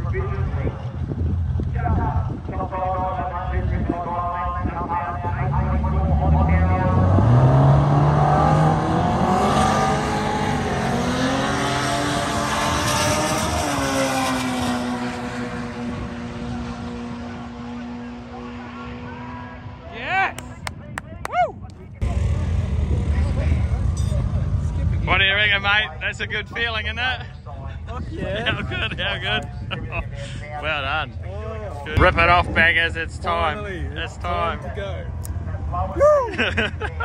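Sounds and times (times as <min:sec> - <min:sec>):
drag car engine accelerating: 0:05.3 - 0:19.9, 0:22.0 - 0:27.4.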